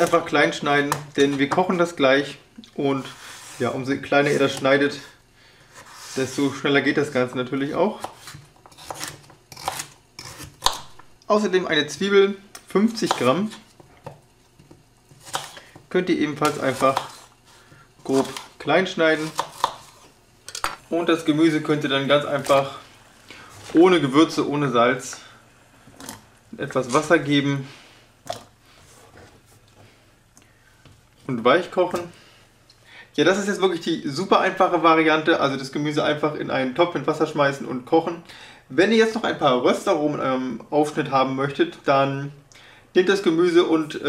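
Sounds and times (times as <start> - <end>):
vegetables rustling: 16.4 - 20.1.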